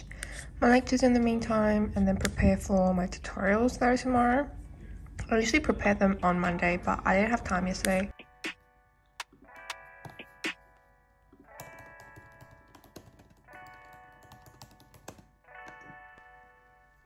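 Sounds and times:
soft background music chords: 0.0 - 17.0
keyboard typing clicks: 11.5 - 15.9.

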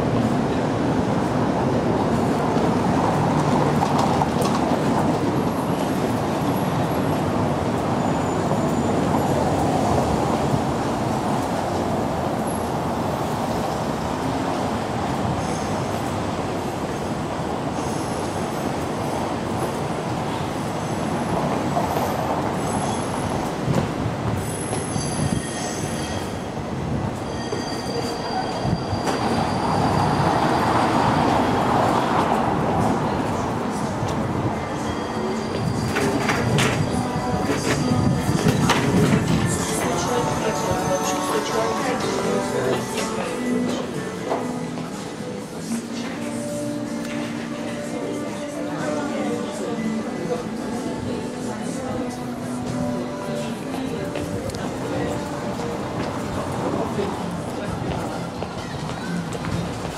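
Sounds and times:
street noise: 0.0 - 59.9
tram running on rails: 0.0 - 59.9
high wheel squeal: 6.5 - 9.9, 20.3 - 23.6, 24.4 - 31.6, 34.6 - 42.6.

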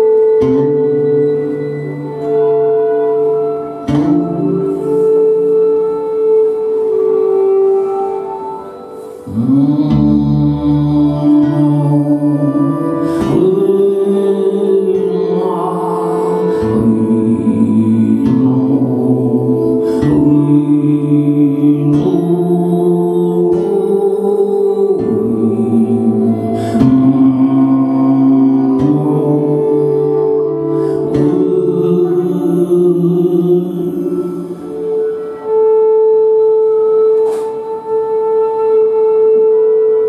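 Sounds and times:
bowed string instrument: 0.0 - 40.0
man singing long held notes: 0.0 - 40.0.

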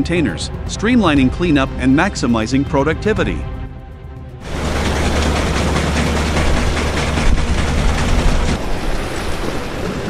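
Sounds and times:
music: 0.0 - 7.4
compact loader machine rumble: 4.4 - 8.6.

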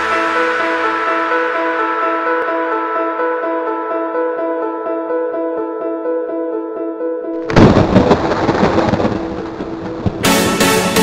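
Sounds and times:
electronic keyboard chords: 0.0 - 11.0
thunderclap rumbling: 7.4 - 11.0.

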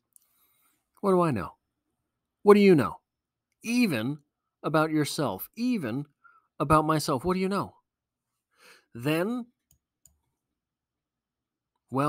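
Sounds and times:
man's voice: 1.0 - 1.6, 2.4 - 3.0, 3.6 - 7.8, 9.0 - 9.6.

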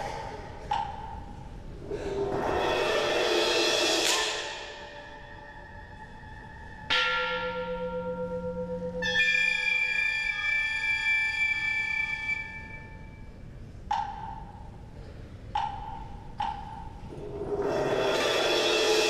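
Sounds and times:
struck mallet percussion ringing: 2.4 - 13.3
bright metallic stroke ringing: 4.2 - 13.4.

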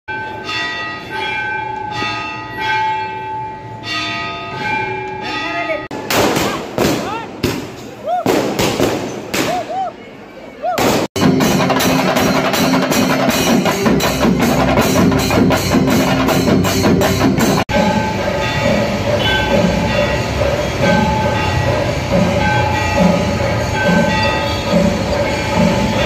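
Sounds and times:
bells ringing: 0.1 - 6.0, 11.2 - 26.0
fireworks bangs and crackle: 5.9 - 9.8, 10.8 - 11.3
drums playing fast: 11.1 - 17.8.

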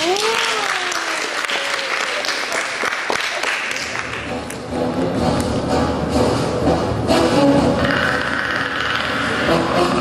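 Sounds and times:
dark rumbling: 4.7 - 10.0.

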